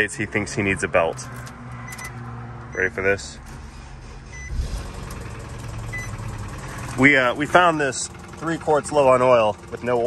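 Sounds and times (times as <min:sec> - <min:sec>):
car engine clattering: 0:00.0 - 0:10.0.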